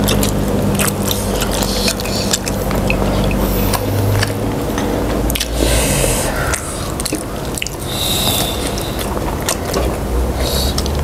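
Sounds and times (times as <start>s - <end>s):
sticky mouth clicks and smacks: 0.0s - 11.0s
wet chewing and sucking: 0.0s - 11.0s.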